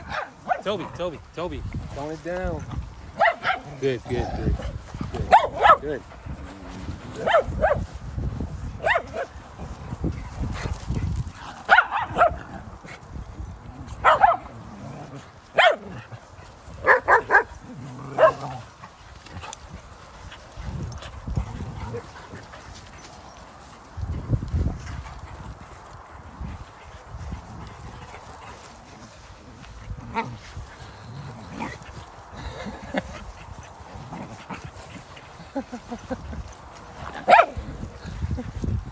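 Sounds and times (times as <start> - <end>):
dogs barking: 0.0 - 0.7, 3.1 - 4.2, 5.2 - 6.0, 7.1 - 7.8, 8.8 - 9.4, 11.5 - 12.6, 13.9 - 14.6, 15.5 - 16.2, 16.8 - 18.7, 37.0 - 37.9.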